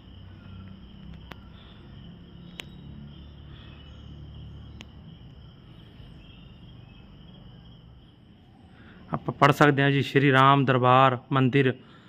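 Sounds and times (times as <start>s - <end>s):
high-pitched insect trilling: 0.0s - 10.0s
faint clicks: 1.0s - 1.7s, 2.4s - 2.9s, 4.7s - 5.0s.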